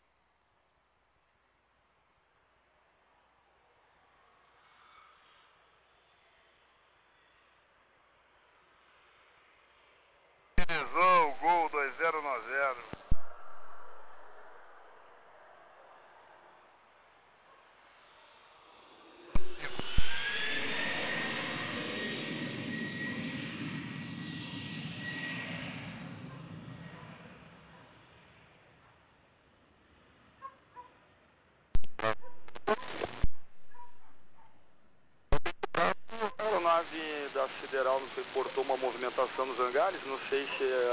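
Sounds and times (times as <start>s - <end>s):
jet engines whining and roaring: 20.2s - 27.6s
sharp clicks: 31.8s - 33.2s.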